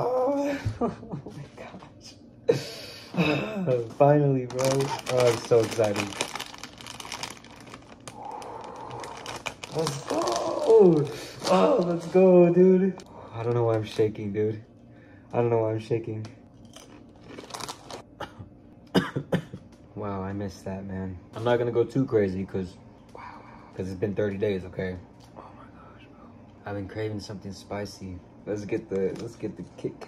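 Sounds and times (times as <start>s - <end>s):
man coughing: 2.9s - 3.8s, 18.2s - 19.6s
plastic chip bag crinkling: 4.4s - 14.2s, 16.6s - 18.1s.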